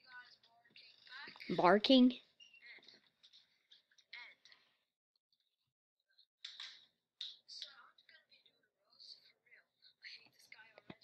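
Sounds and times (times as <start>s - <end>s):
tinny speech from small speaker: 0.0s - 3.1s.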